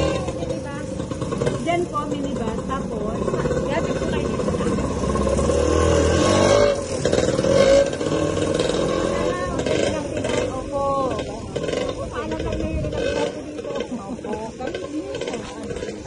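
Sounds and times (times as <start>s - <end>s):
vehicle engine running: 0.0s - 16.0s
voices talking: 0.0s - 16.0s.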